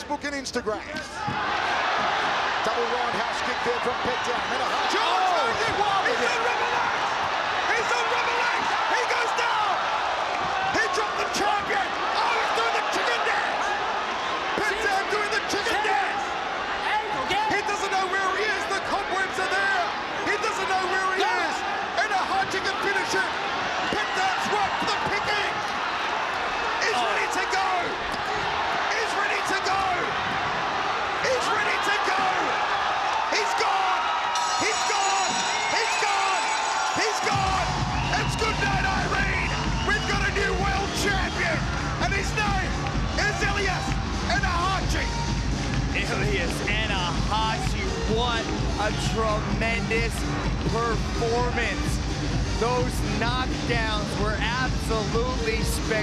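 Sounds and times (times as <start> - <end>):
crowd yelling and cheering: 0.0 - 56.0.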